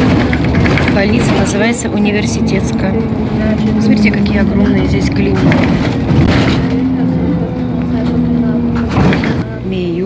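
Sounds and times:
bus engine hum: 0.0 - 10.0
road noise: 0.0 - 10.0.

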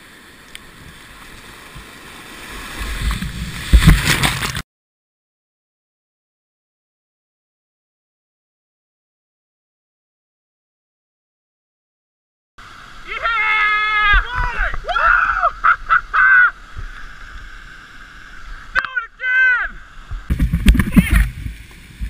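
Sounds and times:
whitewater rushing: 12.6 - 22.0
people whooping and yelling: 13.1 - 16.6
wind noise on microphone: 20.0 - 22.0.

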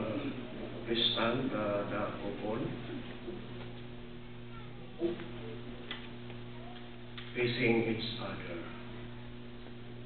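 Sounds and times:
electrical hum from sound system: 0.0 - 10.0.

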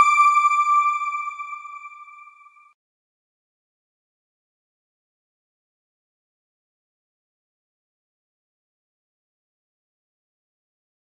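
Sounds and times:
synthesized chime: 0.0 - 2.6.

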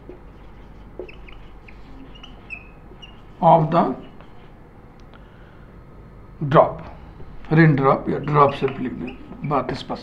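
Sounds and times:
whiteboard marker squeaking: 0.0 - 4.6, 7.9 - 10.0.

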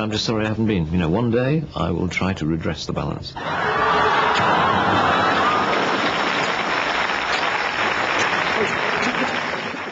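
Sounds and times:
studio audience laughing: 3.4 - 6.7, 8.1 - 9.9
audience applauding: 3.5 - 9.9.

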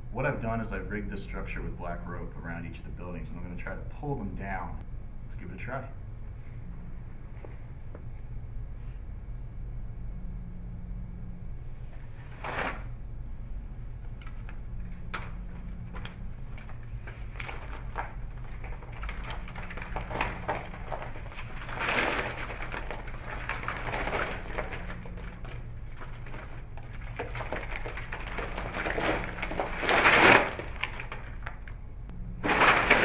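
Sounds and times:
playing cards clattering down: 14.2 - 31.7, 32.4 - 33.0.

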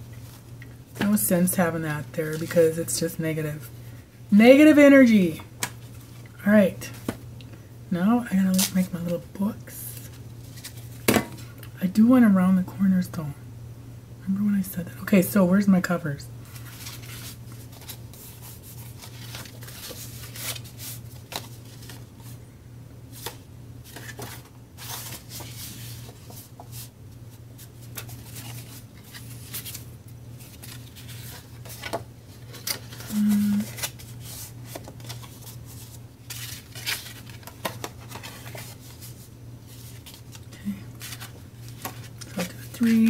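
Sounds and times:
steady low hum: 0.0 - 43.0
paper rustling and sliding: 16.5 - 22.4, 23.1 - 26.9.

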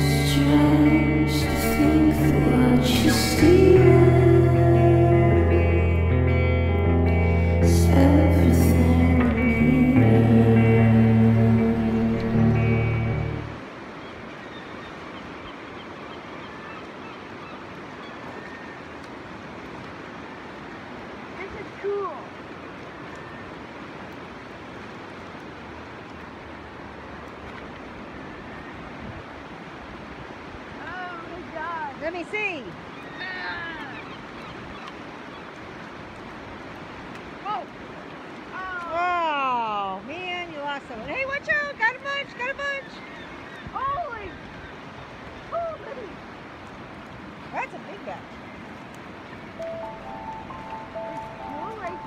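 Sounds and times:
background music with held notes: 0.0 - 13.6, 49.6 - 52.0
river rapids rushing: 0.0 - 52.0.

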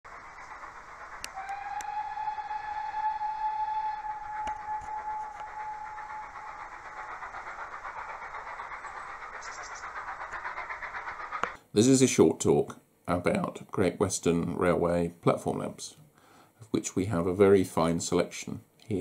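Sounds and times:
train running rhythmically: 0.0 - 19.0
steam locomotive whistle blast: 1.2 - 7.0.

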